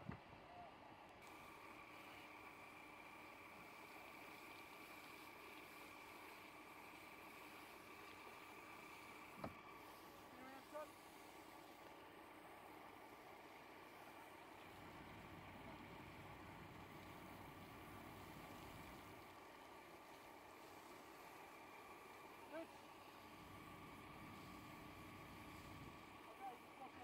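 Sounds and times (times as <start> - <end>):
faint steady hum: 0.0 - 27.0.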